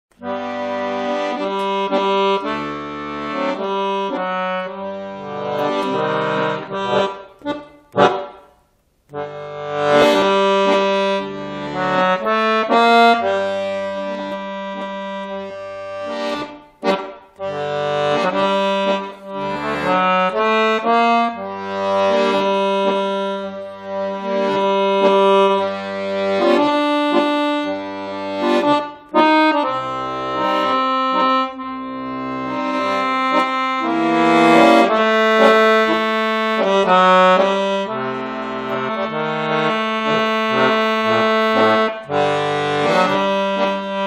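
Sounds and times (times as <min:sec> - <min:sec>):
button accordion playing a tune: 0:00.1 - 0:44.0.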